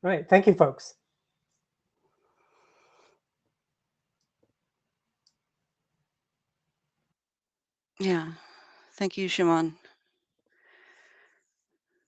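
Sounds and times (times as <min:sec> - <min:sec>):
breath into microphone: 0:10.5 - 0:11.6.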